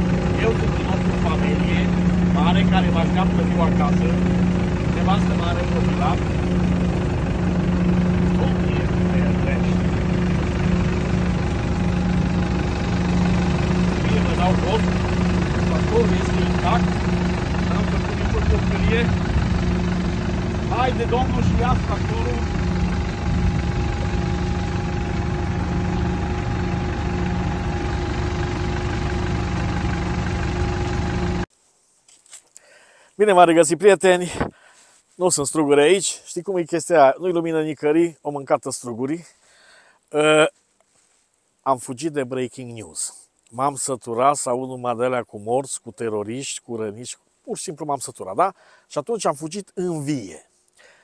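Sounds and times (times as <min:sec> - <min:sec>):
tractor engine running: 0:00.0 - 0:31.5.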